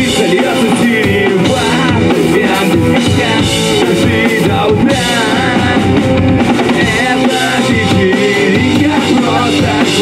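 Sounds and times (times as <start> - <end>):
drum kit: 0.0 - 10.0
electric bass: 0.0 - 10.0
electric guitar: 0.0 - 10.0
man singing: 0.0 - 10.0.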